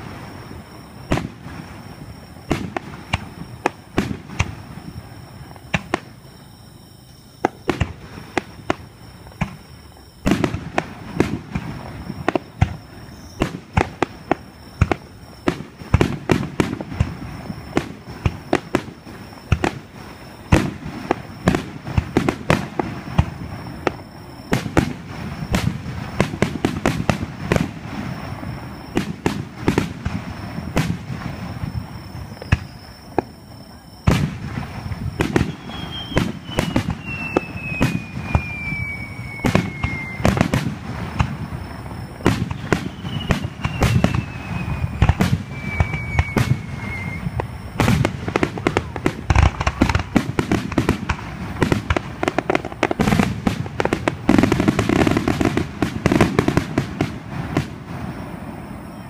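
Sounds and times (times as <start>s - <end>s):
fireworks bursting: 0.0s - 59.0s
rumbling crackling fireworks: 0.0s - 59.0s.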